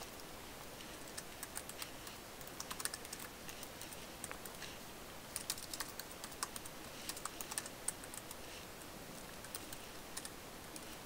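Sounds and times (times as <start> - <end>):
typing on computer keyboard: 1.1 - 4.6, 5.3 - 8.4.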